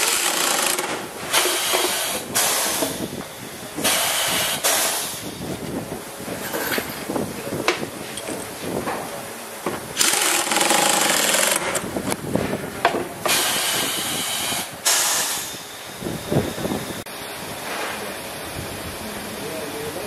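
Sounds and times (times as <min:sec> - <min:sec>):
air wrench hissing rattle: 0:00.0 - 0:05.5, 0:10.0 - 0:12.2, 0:13.2 - 0:15.7
workshop hum: 0:00.0 - 0:20.0.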